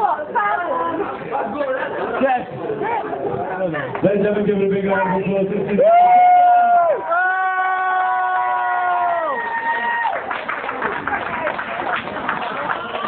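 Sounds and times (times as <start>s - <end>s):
crowd cheering and clapping: 5.8s - 13.0s.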